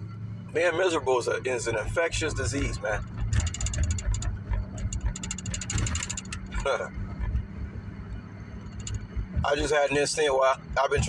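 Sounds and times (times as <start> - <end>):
car engine and road drone: 0.0 - 11.0
fine rattling clicks: 3.0 - 7.4, 8.7 - 9.2.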